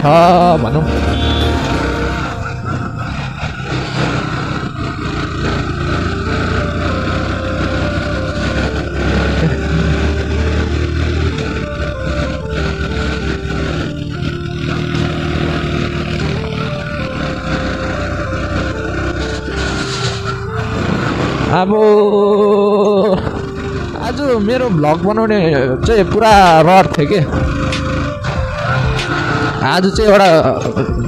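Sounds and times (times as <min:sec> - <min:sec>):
background music melody: 0:00.0 - 0:31.0
motorcycle engine running: 0:00.0 - 0:31.0
road noise: 0:00.0 - 0:31.0.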